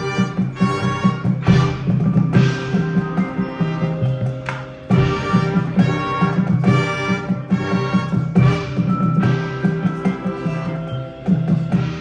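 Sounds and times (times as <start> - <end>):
marching band playing: 0.0 - 12.0.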